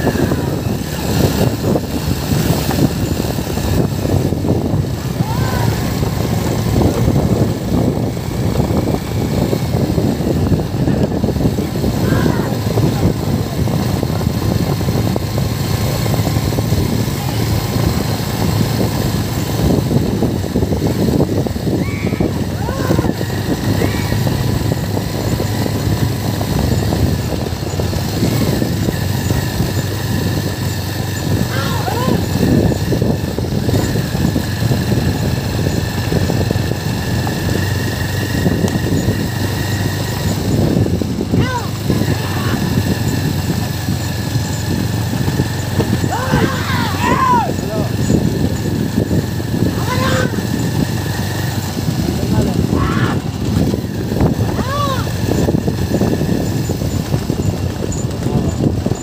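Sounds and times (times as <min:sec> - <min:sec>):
vehicle engine running: 0:00.0 - 0:59.0
short rising and falling shouts: 0:05.0 - 0:06.3, 0:11.9 - 0:12.9, 0:21.7 - 0:24.6, 0:31.4 - 0:32.5, 0:45.8 - 0:48.0, 0:49.7 - 0:50.6, 0:54.5 - 0:55.2.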